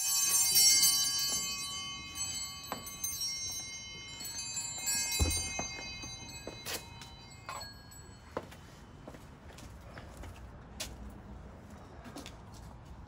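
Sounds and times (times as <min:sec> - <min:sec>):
bells ringing: 0:00.0 - 0:09.7
dull thump: 0:05.2 - 0:06.1.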